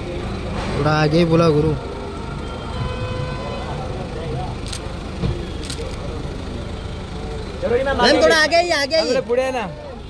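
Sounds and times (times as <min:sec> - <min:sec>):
car engines idling: 0:00.0 - 0:10.0.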